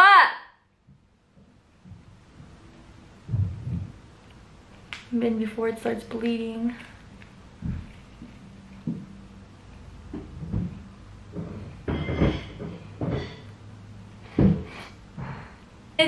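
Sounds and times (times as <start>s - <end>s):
faint low hum: 0.6s - 16.0s.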